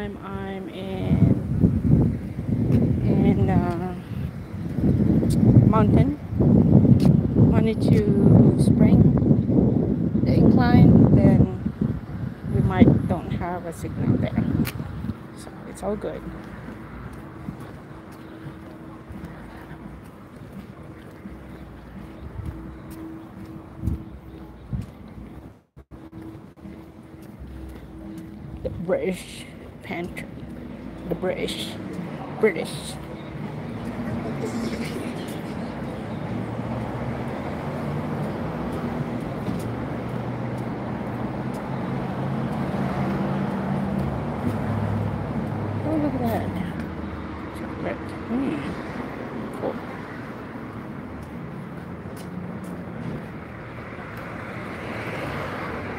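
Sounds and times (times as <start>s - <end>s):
wind on microphone: 0.0s - 25.6s
road noise: 0.0s - 55.9s
traffic rumble: 0.0s - 55.9s
vehicle engine hum: 0.0s - 55.9s.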